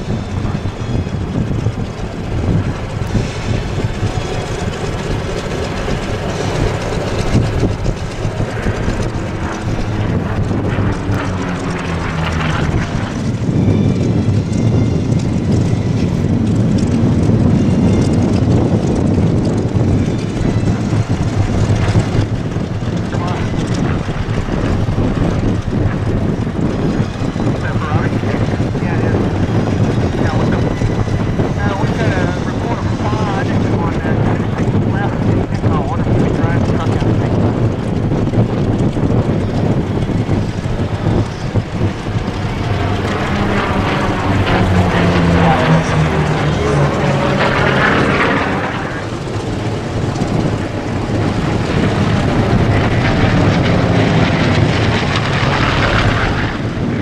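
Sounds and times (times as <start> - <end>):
propeller plane engine drone: 0.0 - 57.0
voices: 23.0 - 24.2, 27.4 - 37.4, 42.5 - 50.0.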